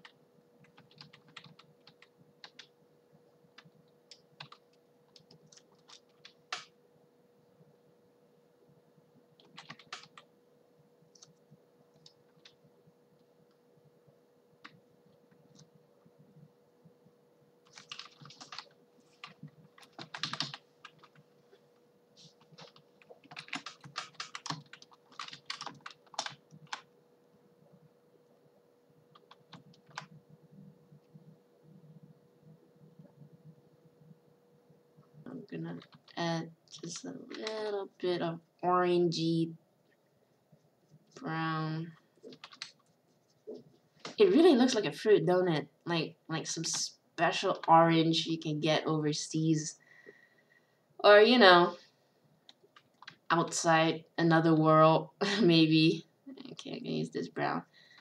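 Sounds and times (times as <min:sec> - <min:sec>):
computer keyboard clicking: 0:00.0 - 0:02.7, 0:03.6 - 0:06.7, 0:09.4 - 0:10.3, 0:11.1 - 0:12.6, 0:17.6 - 0:21.2, 0:22.4 - 0:26.9, 0:29.1 - 0:30.2, 0:35.8 - 0:37.7, 0:42.2 - 0:42.9, 0:52.5 - 0:53.2
faint steady hum: 0:00.0 - 0:58.0.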